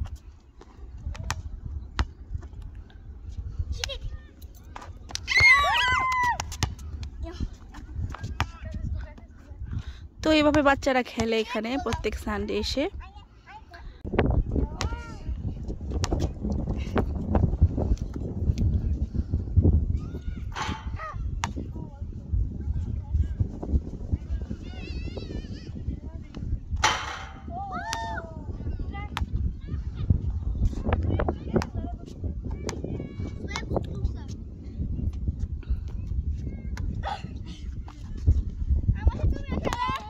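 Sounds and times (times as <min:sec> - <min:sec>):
wind rumbling on microphone: 0:00.0 - 0:40.0
faint children's voices: 0:19.8 - 0:34.8
sharp thumps: 0:26.8 - 0:27.6.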